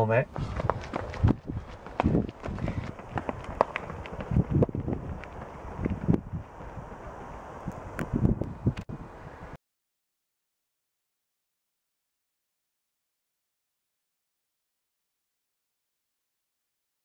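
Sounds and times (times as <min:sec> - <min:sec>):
running footsteps on tarmac: 0:00.3 - 0:08.8
wind on microphone: 0:00.3 - 0:09.6.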